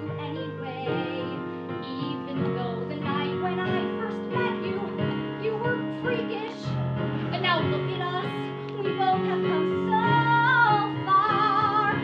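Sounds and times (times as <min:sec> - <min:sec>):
woman singing: 0:00.0 - 0:12.0.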